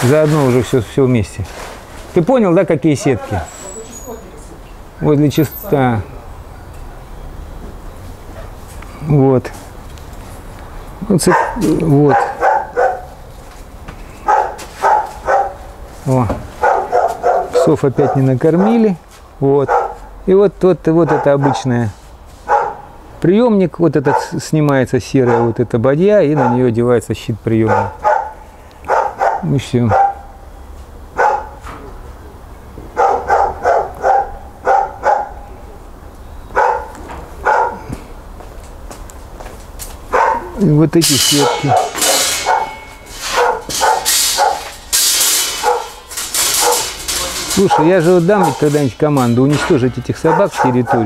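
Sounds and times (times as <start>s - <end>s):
dogs barking: 11.2s - 13.3s, 14.2s - 15.8s, 16.6s - 19.0s, 19.6s - 20.2s, 21.0s - 21.8s, 22.4s - 23.0s, 24.0s - 24.4s, 25.2s - 26.8s, 27.6s - 30.5s, 31.1s - 31.7s, 32.8s - 35.8s, 36.5s - 37.9s, 40.1s - 51.0s.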